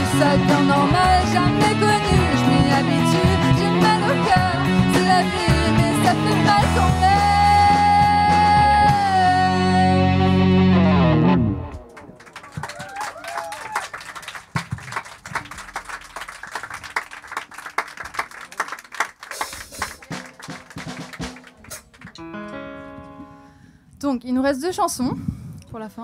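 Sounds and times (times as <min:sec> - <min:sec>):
audience clapping and cheering: 0:11.8 - 0:22.2.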